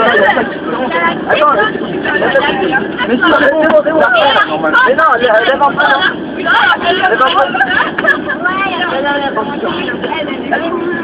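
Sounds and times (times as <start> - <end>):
voices talking over one another: 0.0 - 11.0.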